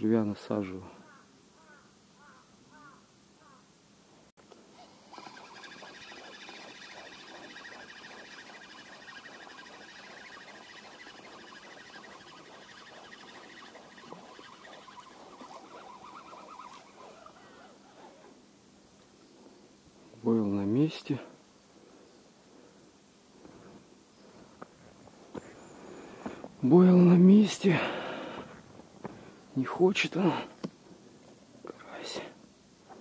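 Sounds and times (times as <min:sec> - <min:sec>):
fishing reel whirring and ticking: 0:04.7 - 0:18.2.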